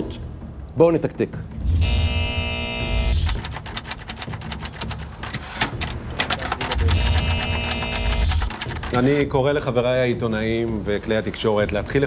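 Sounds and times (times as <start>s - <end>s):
fast ticking clicks: 3.0s - 9.0s.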